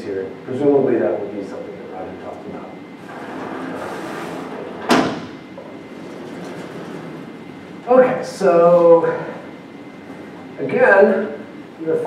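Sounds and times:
whiteboard panel rumbling slide: 3.0s - 5.3s.

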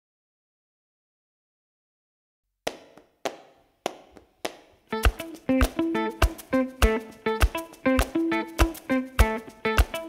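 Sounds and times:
plucked guitar music: 4.9s - 10.0s.

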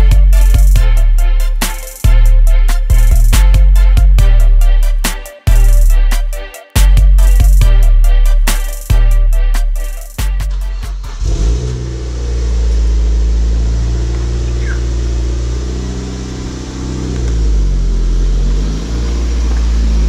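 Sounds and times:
music: 0.0s - 12.0s
car engine revving: 0.0s - 20.0s.

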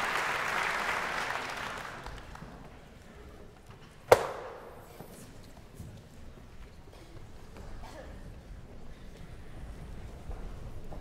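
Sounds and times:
sharp knock echoing in hall: 4.1s - 5.1s.

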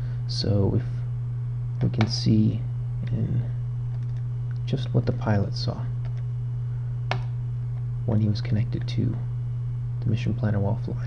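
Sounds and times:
steady low hum: 0.0s - 11.0s
computer mouse click: 3.9s - 4.2s.

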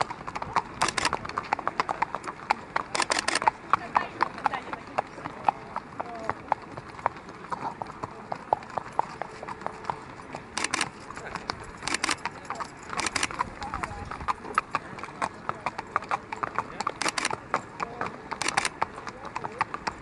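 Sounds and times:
hooves clip-clopping on pavement: 0.0s - 20.0s.

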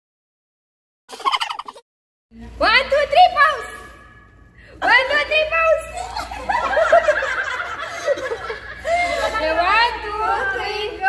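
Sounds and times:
women laughing: 6.0s - 10.9s.

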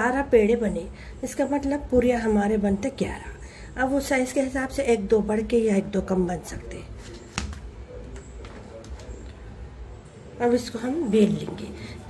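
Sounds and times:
quiet handling at counter: 6.9s - 9.5s.

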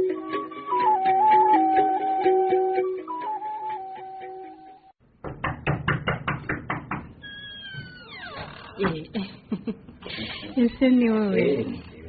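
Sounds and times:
guitar music: 0.0s - 4.8s
quick run of knocks: 5.2s - 7.2s.

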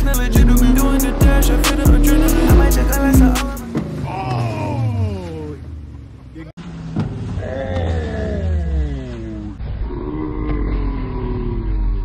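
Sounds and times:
voice-like falling tone: 4.0s - 5.8s, 7.4s - 12.0s.

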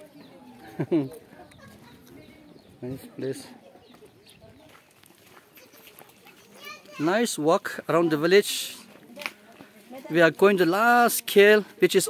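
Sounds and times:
faint background chatter: 0.0s - 11.8s.

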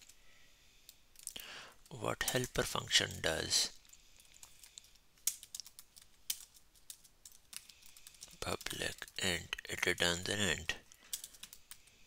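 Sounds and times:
computer keyboard typing: 3.8s - 9.2s, 11.1s - 12.0s.

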